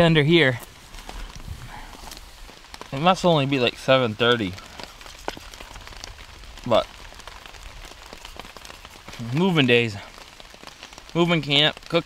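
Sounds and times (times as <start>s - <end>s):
rain pattering on shelter: 0.0s - 12.0s.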